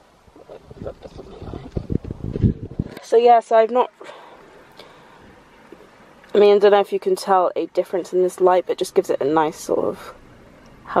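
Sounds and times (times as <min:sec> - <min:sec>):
microphone handling knocks and rubbing: 0:00.5 - 0:03.0.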